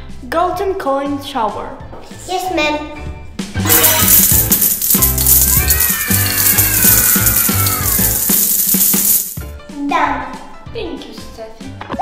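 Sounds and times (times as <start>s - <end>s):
bouncy background music: 0.0s - 12.0s
coins jingling and rattling: 3.7s - 9.5s.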